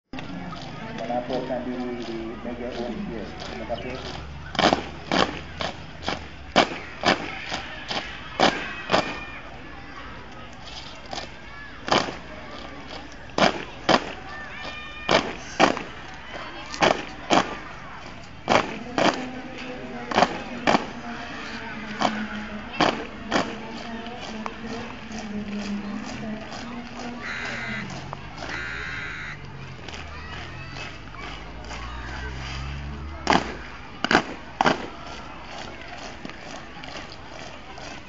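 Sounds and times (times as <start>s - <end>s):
boots stamping on brick paving: 0.1s - 9.4s, 10.3s - 38.0s
lighter footfalls: 0.1s - 9.4s, 10.3s - 38.0s.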